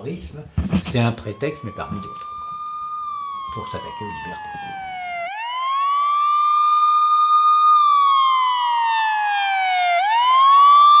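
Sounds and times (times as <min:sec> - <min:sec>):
wailing siren: 0:00.7 - 0:11.0.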